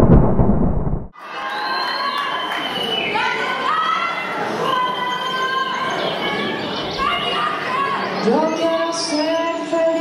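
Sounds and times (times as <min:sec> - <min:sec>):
deep rumbling thunder effect: 0:00.0 - 0:01.1.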